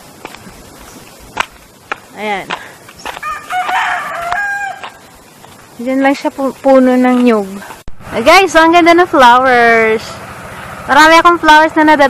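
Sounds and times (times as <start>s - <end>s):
rooster crowing: 3.2s - 5.1s.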